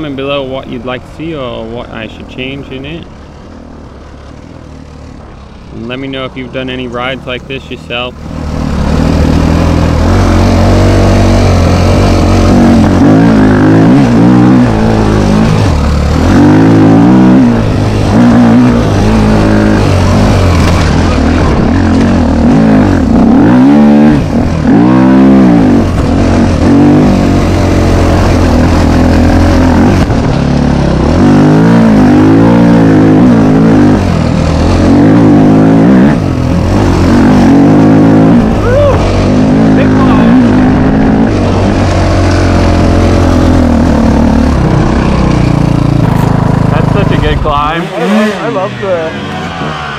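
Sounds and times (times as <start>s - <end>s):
dirt bike engine revving: 0.0s - 49.9s.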